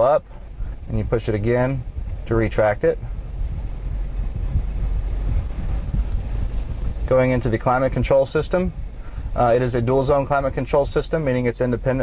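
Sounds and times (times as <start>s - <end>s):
car cabin rumble: 0.0s - 12.0s.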